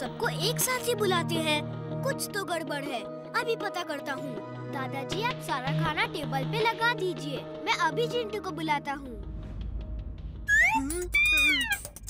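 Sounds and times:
high-pitched cartoon cries: 0:10.5 - 0:12.0.

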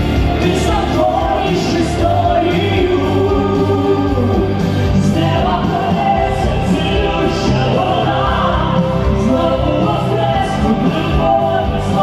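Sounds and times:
amplified instrumental accompaniment: 0:00.0 - 0:12.0
woman and man singing: 0:00.2 - 0:12.0.

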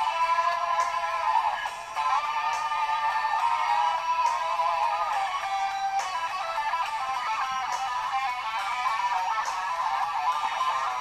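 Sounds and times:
rock guitar solo: 0:00.0 - 0:11.0.

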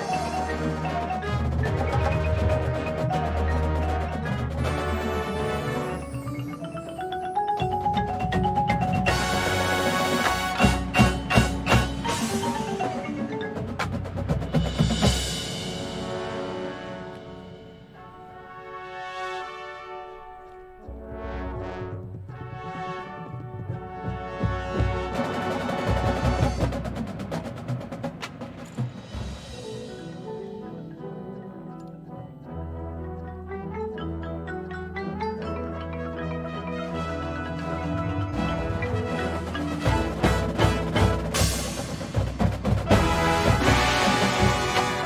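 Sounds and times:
drum and bugle corps playing: 0:00.0 - 0:06.2, 0:07.6 - 0:20.3, 0:20.9 - 0:29.9, 0:36.4 - 0:45.0
brass line holding chords: 0:00.0 - 0:07.5, 0:08.5 - 0:13.6, 0:15.2 - 0:26.8, 0:35.8 - 0:45.0.

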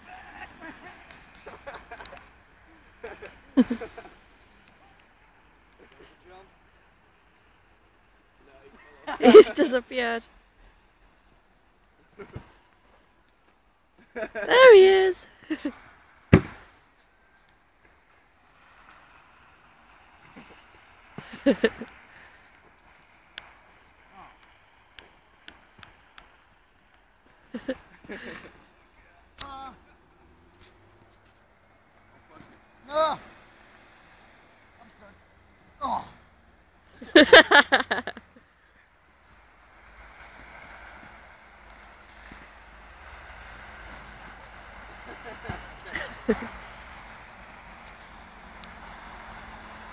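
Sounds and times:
person laughing: 0:03.0 - 0:04.1, 0:09.1 - 0:09.7, 0:14.2 - 0:15.8, 0:21.2 - 0:21.9, 0:37.0 - 0:38.2, 0:45.2 - 0:46.5.

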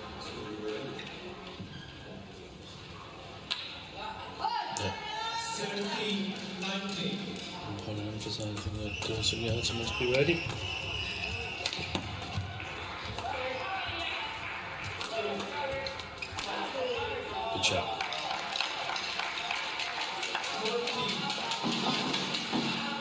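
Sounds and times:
shoes squeaking on court floor: 0:01.0 - 0:02.2, 0:08.2 - 0:12.6, 0:15.7 - 0:17.3.

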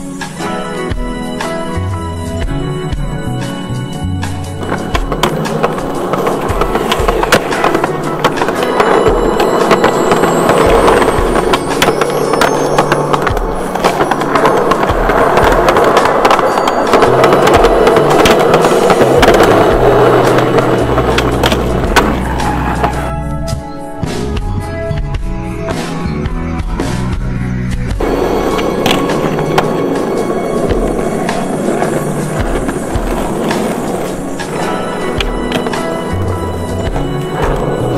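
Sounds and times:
skateboard wheels rolling on concrete: 0:00.0 - 0:24.4, 0:25.1 - 0:37.9
skateboard clacks: 0:04.5 - 0:23.1, 0:28.0 - 0:37.9
music with bass line: 0:19.0 - 0:28.4.

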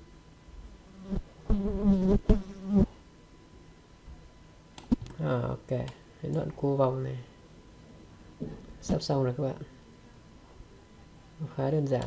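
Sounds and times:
flying insect buzzing: 0:01.0 - 0:02.9.

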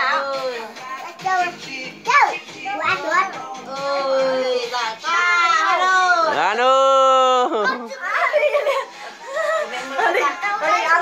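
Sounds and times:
children talking and calling out: 0:00.0 - 0:06.4, 0:07.4 - 0:11.0.

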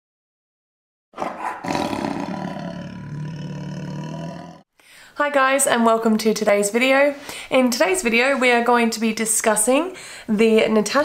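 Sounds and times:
lion roaring: 0:01.2 - 0:04.7.

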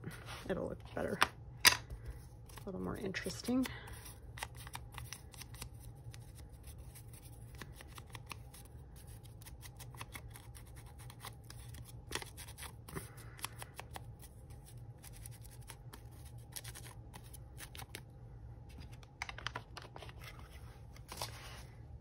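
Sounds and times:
paper rustling: 0:18.7 - 0:21.7.

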